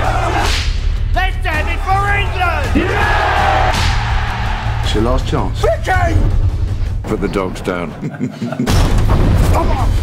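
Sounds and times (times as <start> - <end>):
men shouting: 0.0 - 0.6, 1.2 - 4.9
trailer music: 0.0 - 10.0.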